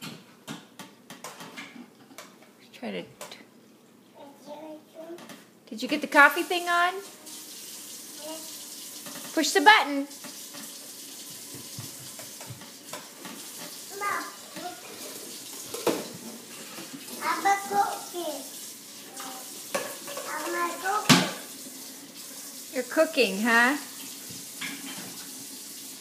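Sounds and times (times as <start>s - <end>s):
toddlers babbling: 13.9s - 14.9s, 17.2s - 18.4s.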